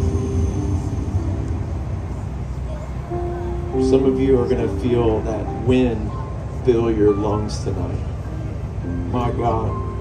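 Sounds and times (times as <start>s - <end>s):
electric keyboard sustained notes: 0.0s - 10.0s
low uneven rumble: 0.0s - 10.0s.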